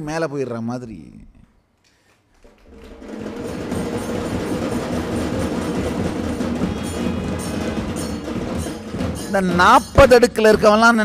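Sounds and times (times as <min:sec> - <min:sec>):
music with percussion: 0:02.6 - 0:11.0.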